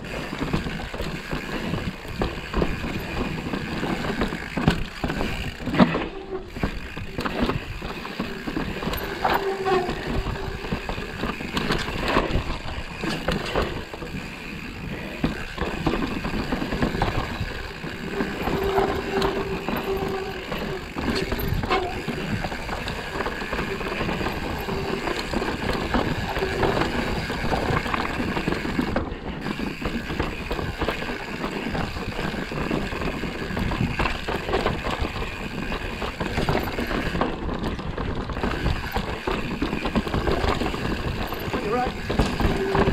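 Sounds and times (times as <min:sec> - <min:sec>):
mountain bike rattling over trail: 0:00.0 - 0:42.9.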